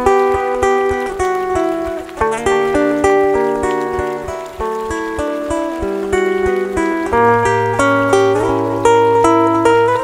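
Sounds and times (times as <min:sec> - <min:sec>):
fingerstyle acoustic guitar: 0:00.0 - 0:10.0.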